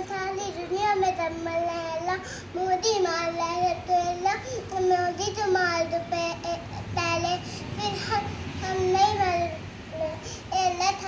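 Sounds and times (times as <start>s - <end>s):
girl chanting a prayer: 0.0s - 11.0s.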